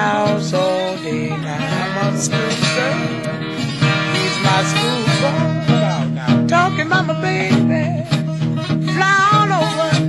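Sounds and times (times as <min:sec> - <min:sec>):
acoustic blues guitar: 0:00.0 - 0:10.0.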